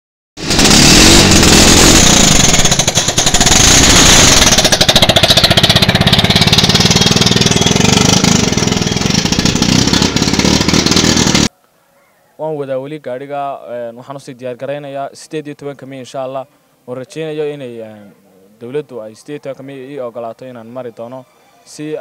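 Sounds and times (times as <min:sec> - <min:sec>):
small car engine running: 0:00.4 - 0:11.5.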